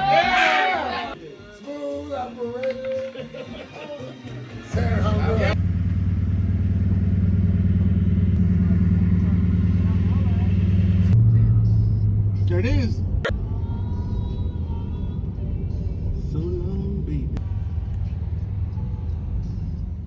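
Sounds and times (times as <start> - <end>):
vehicle engine low drone: 4.7 - 20.0.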